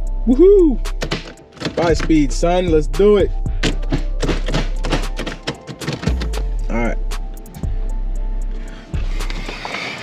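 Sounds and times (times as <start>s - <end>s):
gear shifter clicks and clunks: 0.9s - 2.2s, 3.6s - 6.4s.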